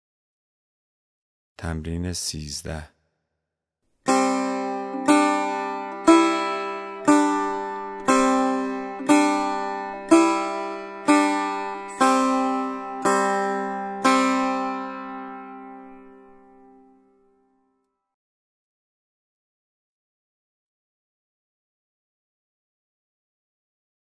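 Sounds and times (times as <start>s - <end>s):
long-necked lute plucked: 4.1s - 17.4s.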